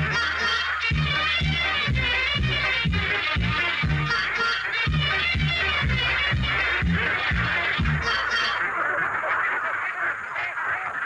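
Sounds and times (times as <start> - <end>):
upbeat music with bouncing bass: 0.0 - 8.6
ducks honking and calling: 0.0 - 11.0.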